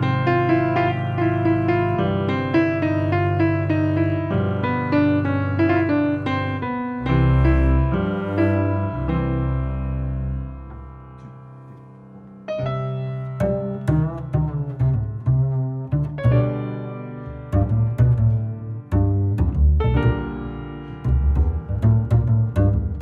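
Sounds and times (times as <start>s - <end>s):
jazz piano chords: 0.0s - 23.0s
plucked double bass: 0.0s - 23.0s.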